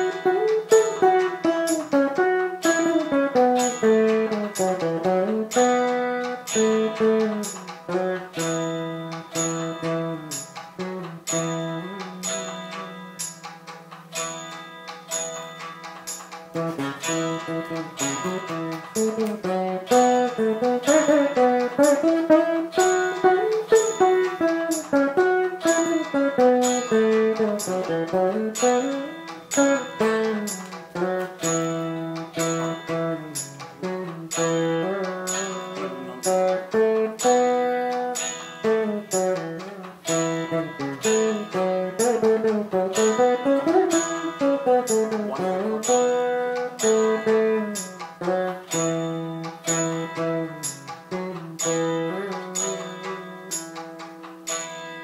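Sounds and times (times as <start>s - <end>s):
plucked veena melody: 0.0s - 55.0s.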